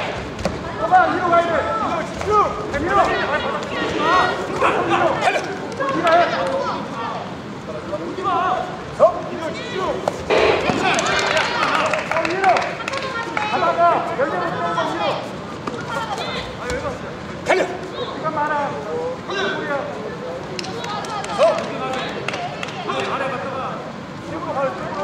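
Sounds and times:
voices calling out and talking: 0:00.0 - 0:25.0
sharp thumps: 0:10.1 - 0:11.1.

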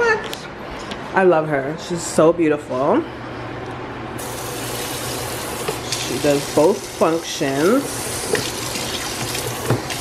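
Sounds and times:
faucet water spraying into sink: 0:04.2 - 0:10.0.

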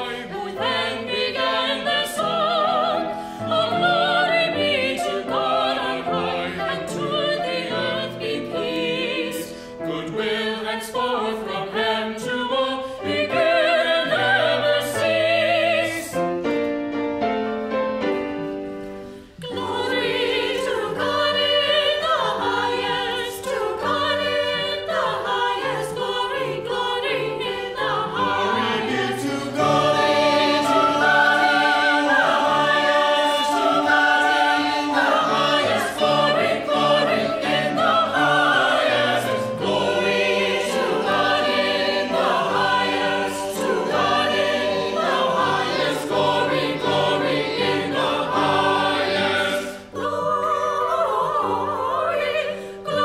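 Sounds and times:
choir singing: 0:00.0 - 0:16.4, 0:18.5 - 0:53.0.

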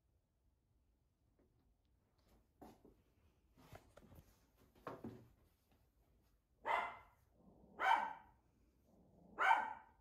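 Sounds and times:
dog barking: 0:06.6 - 0:08.4, 0:09.3 - 0:10.0.

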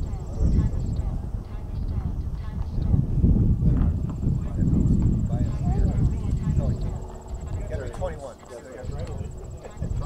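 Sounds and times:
people talking faintly: 0:00.0 - 0:10.0
wind rumble on microphone: 0:00.0 - 0:10.0.

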